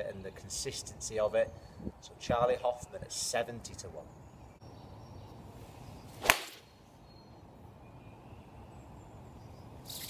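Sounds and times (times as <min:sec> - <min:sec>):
golf club striking ball: 0:06.2 - 0:06.6.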